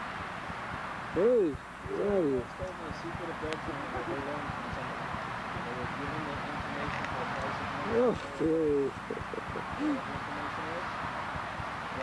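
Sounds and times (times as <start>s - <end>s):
drawn-out vocal calls: 1.1s - 12.0s
faint background voices: 1.2s - 11.2s.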